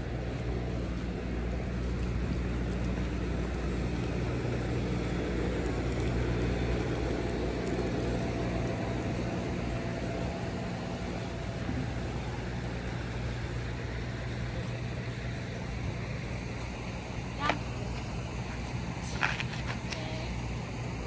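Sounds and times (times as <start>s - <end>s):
low mechanical hum: 0.0s - 21.0s
outdoor background noise: 0.0s - 21.0s.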